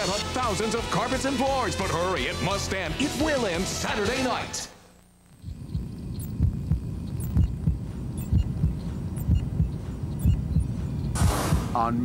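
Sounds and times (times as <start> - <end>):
heartbeat thudding pulses: 5.3 - 11.8.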